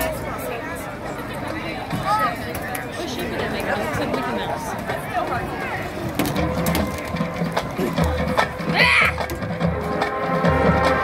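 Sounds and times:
marching band drum rhythm: 6.1 - 11.0.

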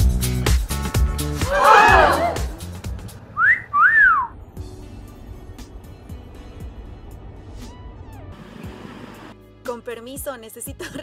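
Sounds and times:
background music: 0.0 - 3.2, 4.6 - 11.0
two-note wolf whistle: 3.4 - 4.4.

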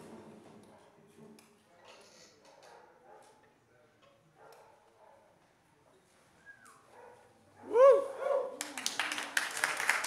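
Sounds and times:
audience clapping: 8.6 - 10.0.

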